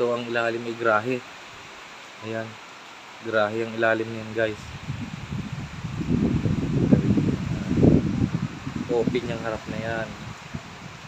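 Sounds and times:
wind buffeting microphone: 4.3s - 11.0s.

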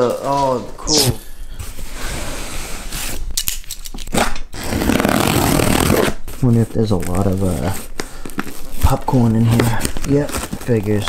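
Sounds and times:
tape scraping on cardboard: 4.1s - 11.0s.

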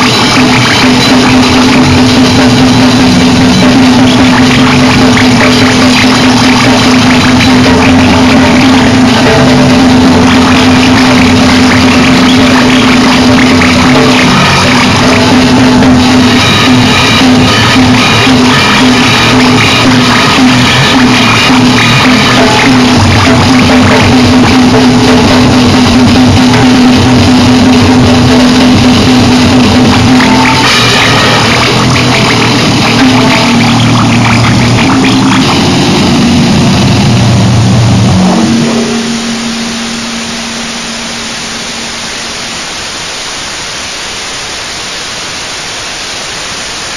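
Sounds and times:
low droning hum: 0.0s - 45.2s
distorted noise wall: 0.0s - 46.9s
static hiss: 0.0s - 46.9s.

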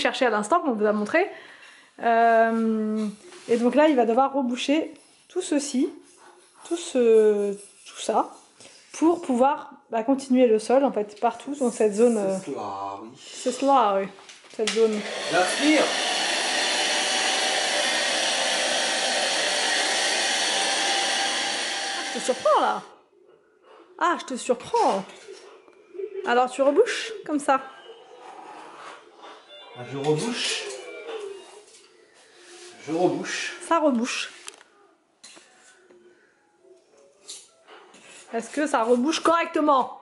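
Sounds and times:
stick vacuum running: 14.7s - 22.9s.

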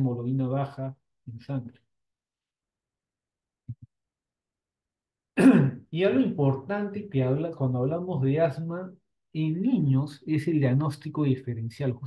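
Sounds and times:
man clearing his throat: 5.4s - 5.9s.

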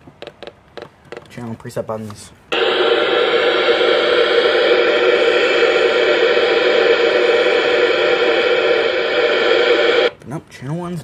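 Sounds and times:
radio static: 2.5s - 10.2s.

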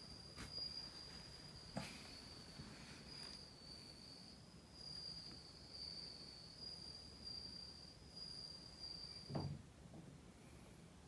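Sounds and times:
high-pitched insect trill: 0.0s - 9.6s
soft thump: 9.3s - 9.6s.

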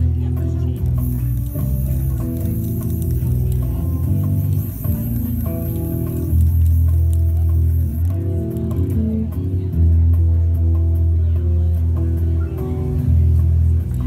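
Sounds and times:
bass low sustained notes: 0.0s - 14.0s.

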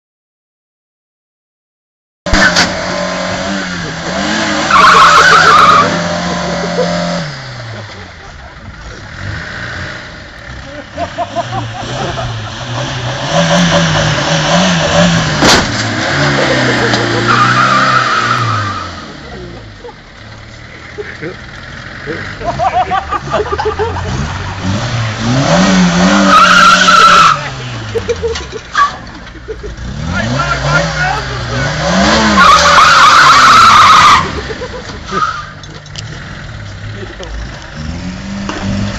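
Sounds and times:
car engines revving: 2.3s - 38.9s
tyres squealing: 4.3s - 7.2s, 10.5s - 37.8s
sharp crash bang: 15.3s - 16.0s.

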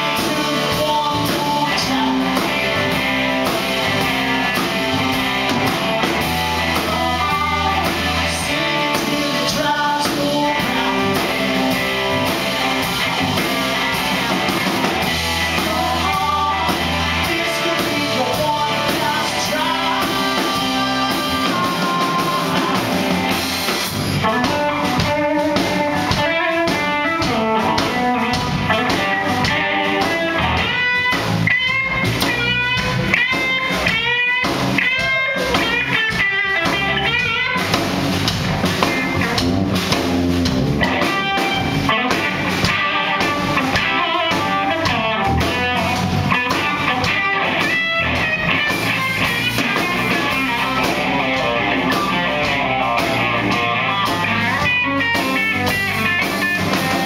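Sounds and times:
drum kit: 0.0s - 57.0s
electric bass: 0.0s - 57.0s
electric guitar lead line: 0.0s - 57.0s
live rock band playing: 0.0s - 57.0s.

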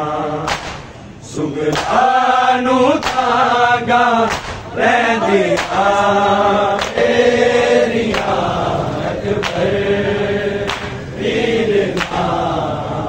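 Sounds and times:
men singing a lament: 0.0s - 13.0s
men beating chests in unison: 0.4s - 1.0s, 1.7s - 9.8s, 10.6s - 12.5s.

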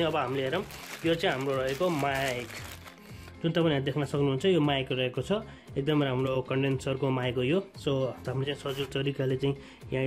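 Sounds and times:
plastic sleeve crinkling: 0.0s - 3.4s.

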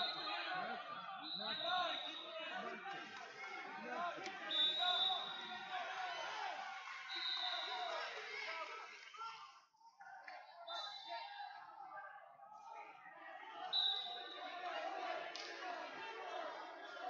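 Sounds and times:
crowd chatter in echoing gym: 0.0s - 17.0s.

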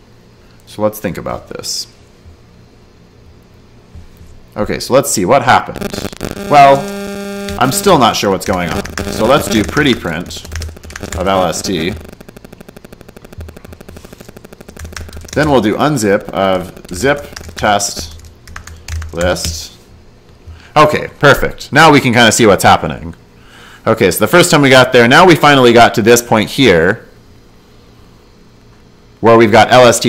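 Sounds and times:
faint low hum: 0.0s - 21.7s
fast small clicks: 5.8s - 19.6s.

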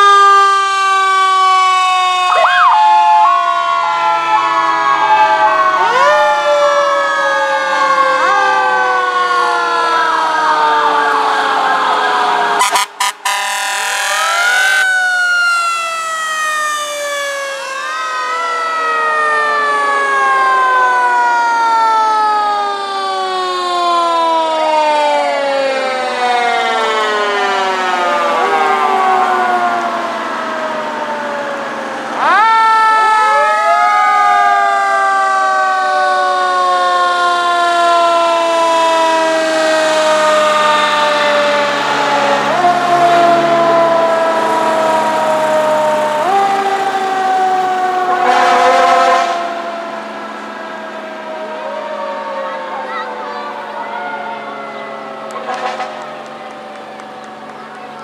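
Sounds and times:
fire engine siren wailing: 0.0s - 58.0s.

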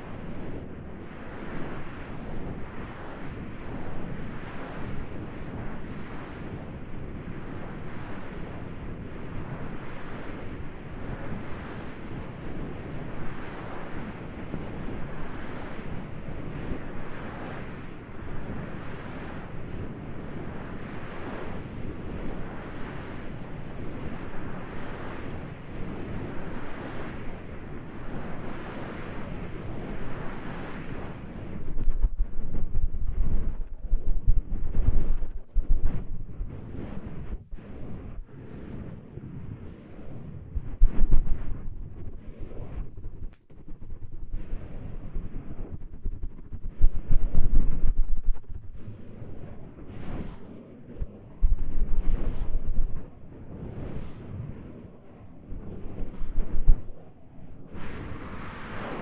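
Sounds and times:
hands rubbing microphone: 31.5s - 38.8s, 40.0s - 53.2s, 55.5s - 57.0s.

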